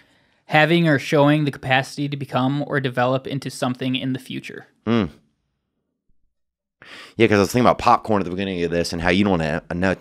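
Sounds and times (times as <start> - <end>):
person saying mm-hmm: 4.9 - 5.2.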